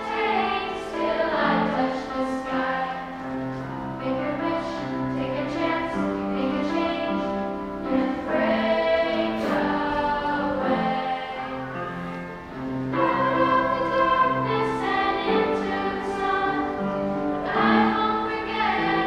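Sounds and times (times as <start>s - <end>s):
children singing: 0.0s - 19.0s.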